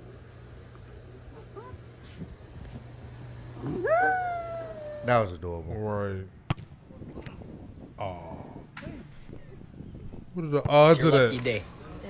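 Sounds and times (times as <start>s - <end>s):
dog howl-like call: 3.6s - 5.2s.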